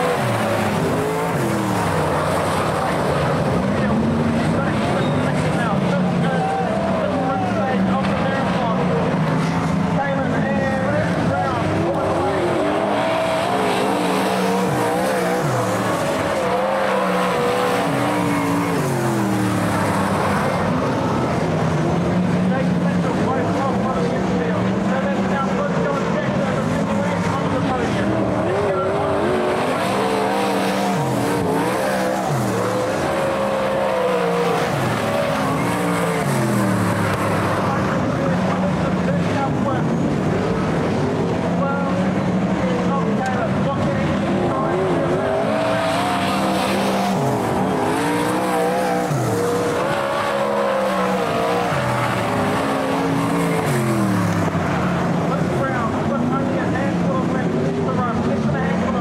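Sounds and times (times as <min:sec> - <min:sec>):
race car engines: 0:00.0 - 0:59.0.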